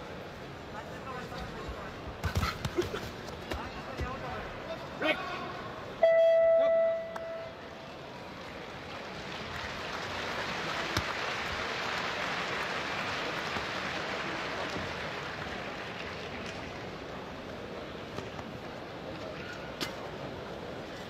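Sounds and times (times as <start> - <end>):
crowd applauding: 8.3 - 17.0.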